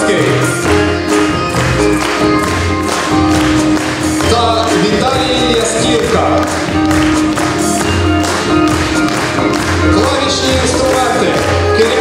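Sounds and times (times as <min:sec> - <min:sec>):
live instrumental ensemble music: 0:00.0 - 0:12.0.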